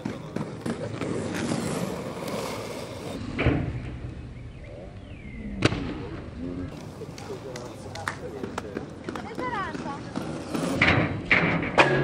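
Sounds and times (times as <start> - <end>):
skates clacking on asphalt: 0.0 - 3.2, 6.7 - 12.0.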